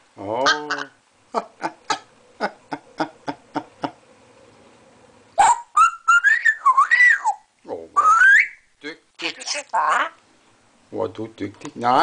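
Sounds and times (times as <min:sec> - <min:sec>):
parrot whistling: 0:05.4 - 0:08.7.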